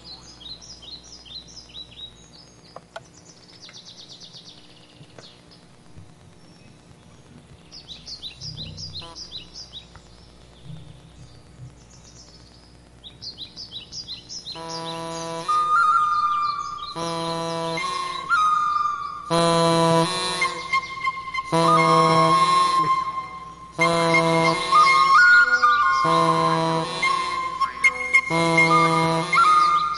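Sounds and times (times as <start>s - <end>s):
bird-like chirping: 6.4s - 19.4s, 27.5s - 29.9s
small wind instrument: 14.5s - 29.9s.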